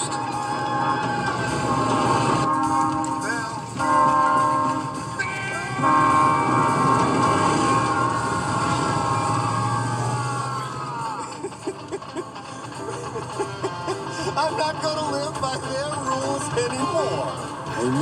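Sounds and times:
train horn blasts: 0:00.2 - 0:09.6.

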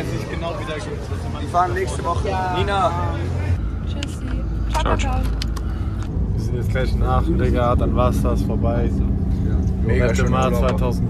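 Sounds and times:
coach bus rumble from inside: 0:00.0 - 0:11.0.

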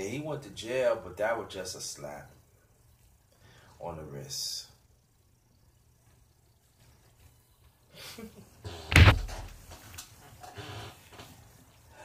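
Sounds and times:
loud thump: 0:08.9 - 0:09.6.

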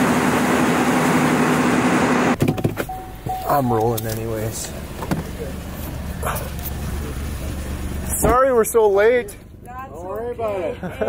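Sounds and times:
car engine rumble inside cabin: 0:00.0 - 0:09.2.

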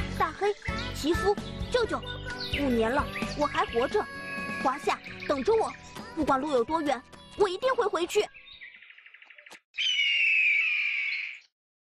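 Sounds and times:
bird of prey screeching: 0:09.8 - 0:11.5.

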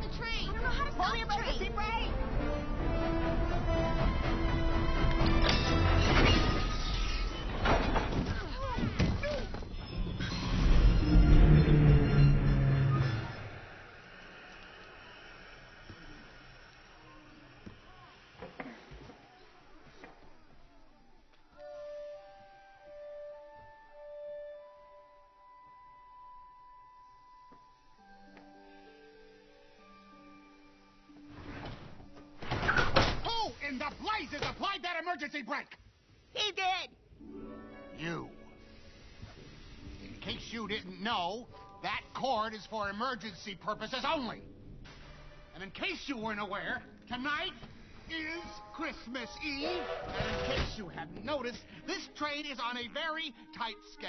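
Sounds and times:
low rumble: 0:09.9 - 0:15.8
rushing noise bursting: 0:10.1 - 0:18.0.

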